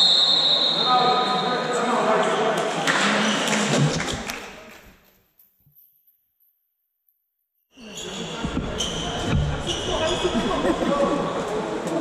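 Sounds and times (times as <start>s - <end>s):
players' voices: 7.8s - 12.0s.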